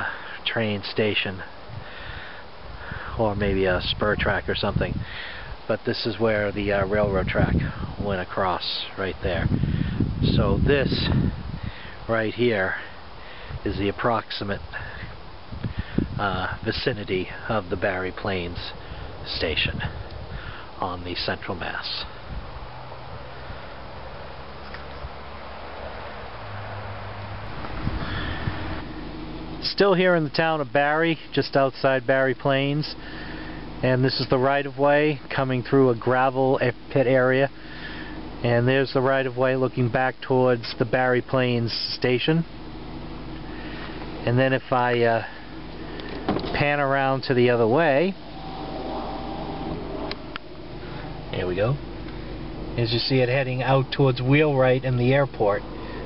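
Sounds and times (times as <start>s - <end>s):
car engine idling: 0.0s - 56.0s
roadside background noise: 0.0s - 56.0s
low hum: 42.4s - 56.0s.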